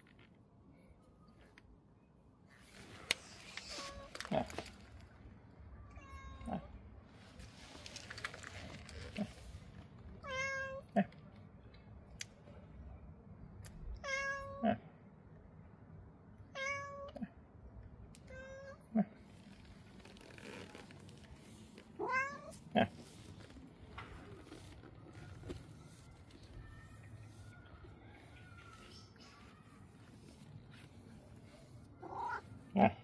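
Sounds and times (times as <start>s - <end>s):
cat meowing: 5.8s - 6.8s, 10.2s - 11.0s, 14.0s - 14.6s, 16.6s - 17.3s, 22.0s - 22.6s, 31.9s - 32.9s.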